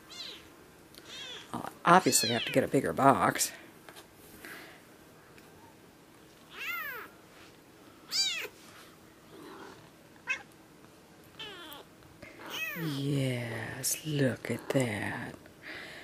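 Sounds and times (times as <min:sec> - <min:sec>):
kittens mewing: 0:06.5 - 0:07.1, 0:08.1 - 0:08.6, 0:11.4 - 0:13.0.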